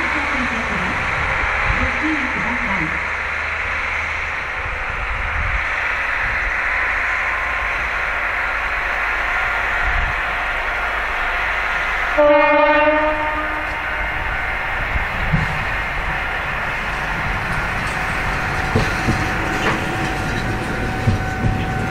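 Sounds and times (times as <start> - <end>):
diesel railcar engine rumble: 0.0 - 21.9.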